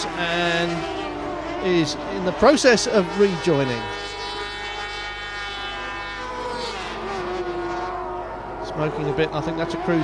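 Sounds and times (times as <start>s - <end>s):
two-stroke engine running: 0.0s - 10.0s.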